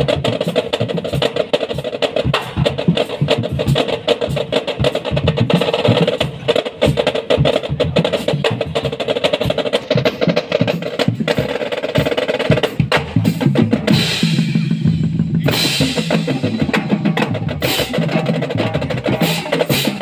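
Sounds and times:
marching drumline playing: 0:00.0 - 0:20.0.

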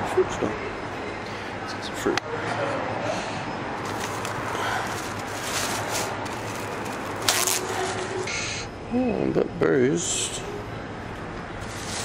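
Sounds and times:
plastic bag crinkling: 0:03.8 - 0:08.3
shop background hiss: 0:03.8 - 0:08.8, 0:11.6 - 0:12.0.

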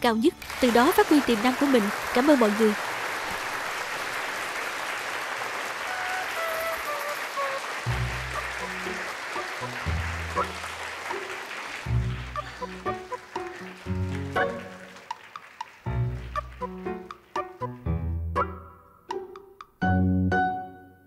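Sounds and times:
audience applauding: 0:00.2 - 0:17.6.

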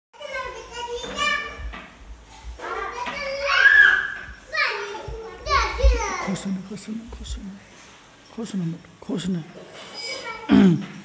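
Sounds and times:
children shouting and squealing: 0:02.6 - 0:06.3, 0:09.9 - 0:10.5.

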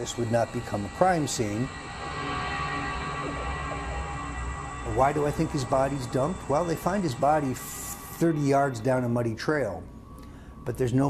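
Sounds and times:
low sustained music drone: 0:00.0 - 0:11.0.

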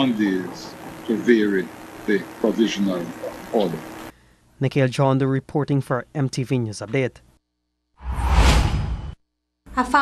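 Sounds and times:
transition whoosh: 0:08.0 - 0:09.2.

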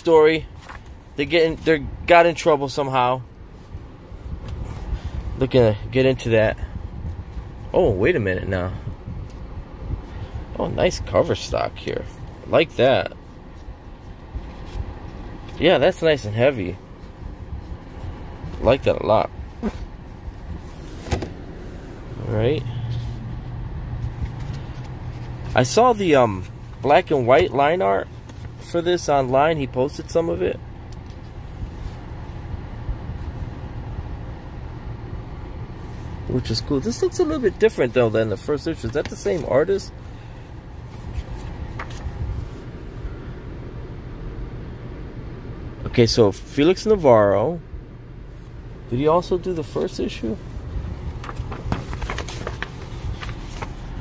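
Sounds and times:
low rumble inside car: 0:00.0 - 0:54.0
rustling book pages: 0:00.5 - 0:01.0, 0:13.5 - 0:15.6, 0:23.9 - 0:29.3, 0:38.7 - 0:39.8, 0:40.8 - 0:42.7, 0:49.6 - 0:54.0
paper pages rustling: 0:00.6 - 0:01.0, 0:24.0 - 0:25.8, 0:40.9 - 0:42.1, 0:50.9 - 0:54.0.

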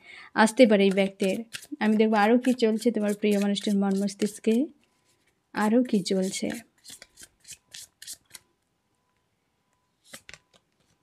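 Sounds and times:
cards being shuffled: 0:05.9 - 0:08.5, 0:10.0 - 0:11.0.

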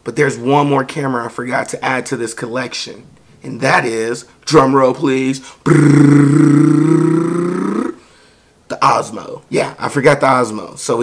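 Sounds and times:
man imitating drum roll: 0:05.6 - 0:08.1.

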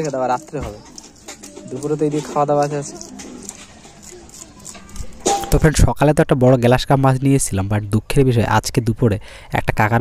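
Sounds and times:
pigeon cooing: 0:00.4 - 0:05.4.

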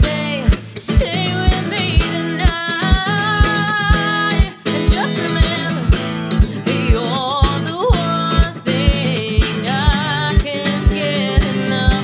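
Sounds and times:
acoustic guitar strummed: 0:00.0 - 0:12.0
person singing with vibrato: 0:00.0 - 0:12.0
low thump on each beat: 0:00.4 - 0:04.5, 0:05.4 - 0:07.0, 0:08.0 - 0:12.0.

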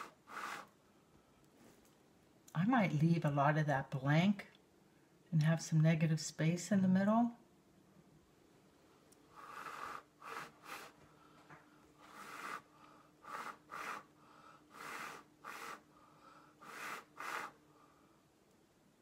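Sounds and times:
person blowing breathy puffs: 0:00.0 - 0:00.8, 0:09.3 - 0:18.0.

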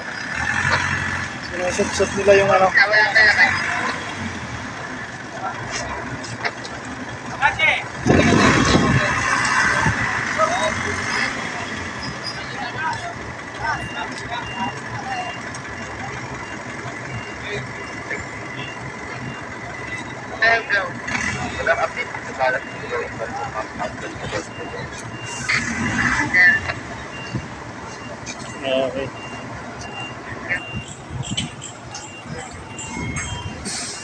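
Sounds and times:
truck engine running: 0:00.0 - 0:34.0
scattered voices: 0:01.4 - 0:34.0
faint interrupted beeping: 0:08.6 - 0:34.0.

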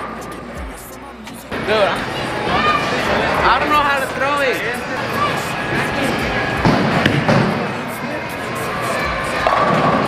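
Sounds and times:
bowling alley hall noise: 0:00.0 - 0:10.0.

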